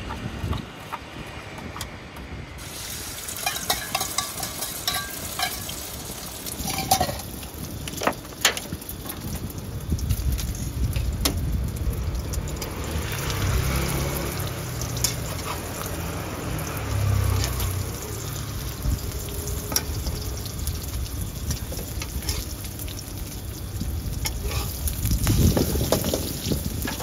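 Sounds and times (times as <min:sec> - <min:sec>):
metal spatula in wok: 0:02.6 - 0:07.4, 0:14.6 - 0:18.3, 0:21.7 - 0:22.7, 0:24.2 - 0:27.0
egg sizzling in hot oil: 0:02.6 - 0:27.0.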